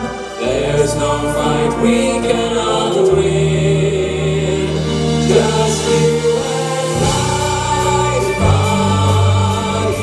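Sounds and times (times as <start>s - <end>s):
live band accompaniment: 0.0s - 10.0s
male vocal group singing: 0.0s - 10.0s.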